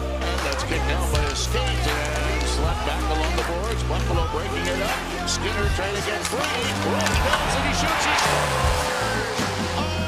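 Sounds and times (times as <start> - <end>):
arena crowd noise: 0.0 - 10.0
pump-up music with heavy bass: 6.8 - 10.0.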